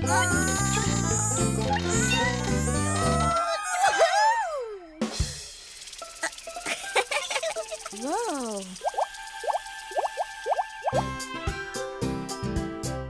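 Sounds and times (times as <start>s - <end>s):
light music: 0.0s - 3.4s, 6.2s - 13.0s
cartoon hiss: 5.4s - 9.1s.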